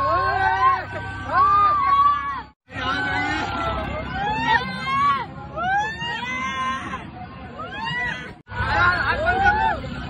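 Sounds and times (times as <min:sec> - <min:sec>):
children screaming and shrieking: 0:00.0 - 0:10.0.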